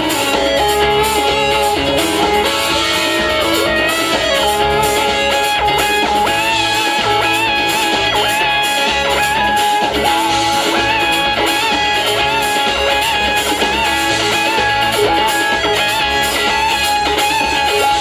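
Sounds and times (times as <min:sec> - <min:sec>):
bass and drums: 0:00.0 - 0:18.0
electric guitar: 0:00.0 - 0:18.0.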